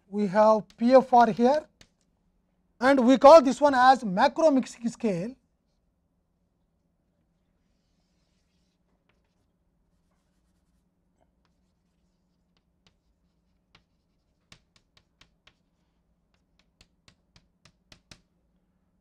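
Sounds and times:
chalk tapping and scratching on blackboard: 0:00.4 - 0:02.1, 0:07.6 - 0:18.3.

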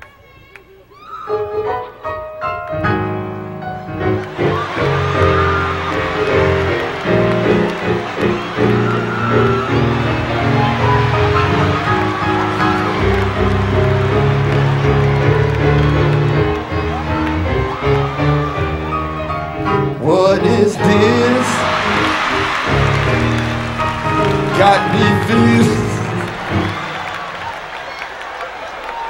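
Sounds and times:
keyboard playing church chords: 0:01.8 - 0:27.8.

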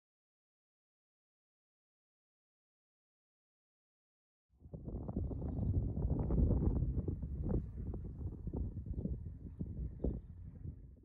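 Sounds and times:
wind buffeting microphone: 0:04.6 - 0:11.0.

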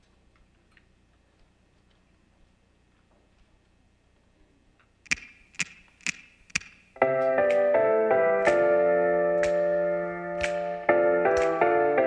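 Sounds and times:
drumsticks clicked together: 0:04.8 - 0:07.6.

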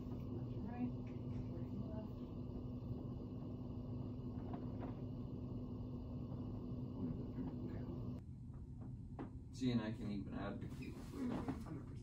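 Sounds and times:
electric fan humming: 0:00.0 - 0:12.0.

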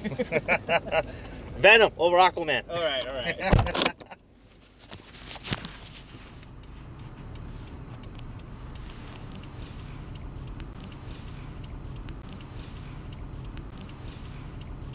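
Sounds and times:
turn signal ticking: 0:00.0 - 0:04.6, 0:06.0 - 0:14.9
car idling rumble: 0:00.0 - 0:14.9.

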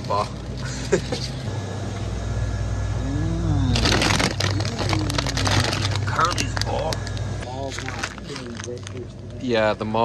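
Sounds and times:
steady low hum: 0:00.0 - 0:10.0
plastic bag crinkling: 0:03.8 - 0:09.4.

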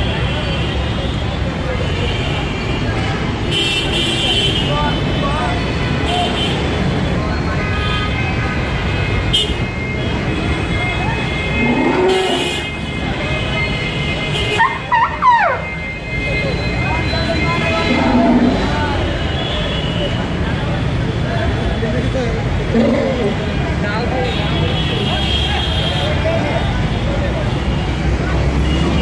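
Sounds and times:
crowd chatter: 0:00.0 - 0:29.0
traffic rumble: 0:00.0 - 0:29.0.

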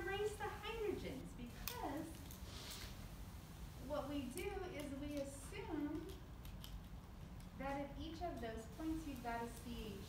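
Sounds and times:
low room hum: 0:00.0 - 0:10.0.

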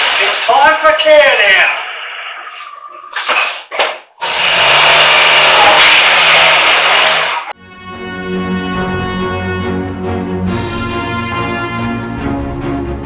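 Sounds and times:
car engine revving: 0:04.3 - 0:07.6
orchestral music: 0:07.5 - 0:13.0.

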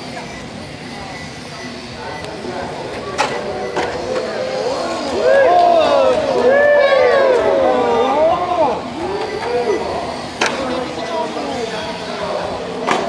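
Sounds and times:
rc car electric motors whining: 0:00.0 - 0:13.0.

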